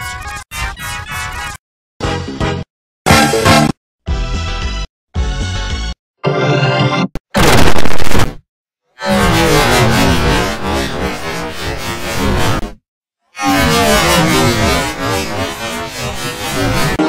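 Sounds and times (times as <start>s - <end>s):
distorted effect-processed music: 7.4s - 8.3s, 13.4s - 17.0s.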